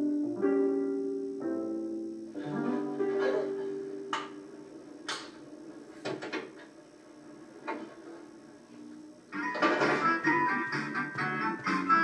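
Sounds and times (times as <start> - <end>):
loud music: 9.4 - 12.0.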